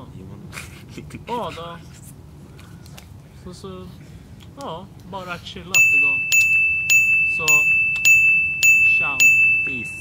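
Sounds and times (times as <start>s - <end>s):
bright ding: 5.8s - 10.0s.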